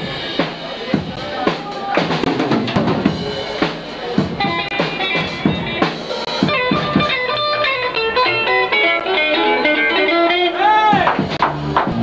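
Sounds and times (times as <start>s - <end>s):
drums: 0.0s - 12.0s
live rock band playing: 0.0s - 12.0s
electric guitar fast notes: 4.4s - 11.3s.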